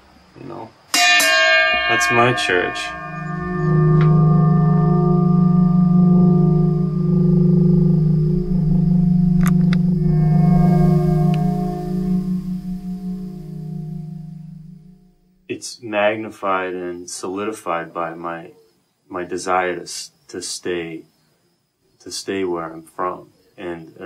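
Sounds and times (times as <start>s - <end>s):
struck saw blade ringing: 0.9s - 15.1s.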